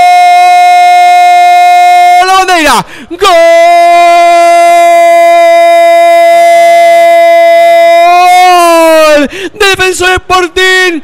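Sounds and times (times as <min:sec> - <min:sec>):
commentator's held goal cry: 0:00.0 - 0:11.0
excited speech: 0:01.2 - 0:11.0.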